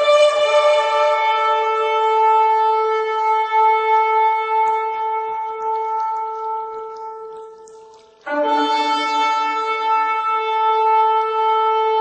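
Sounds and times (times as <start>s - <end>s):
shofar long held note: 0.0s - 7.1s, 8.3s - 12.0s.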